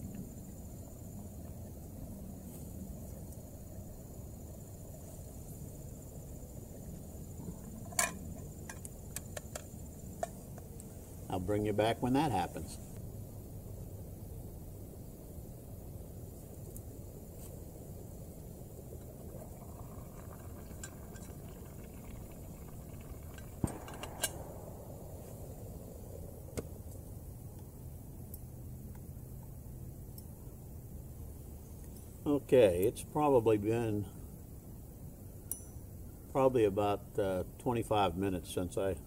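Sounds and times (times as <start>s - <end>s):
soup simmering: 17.9s - 23.7s.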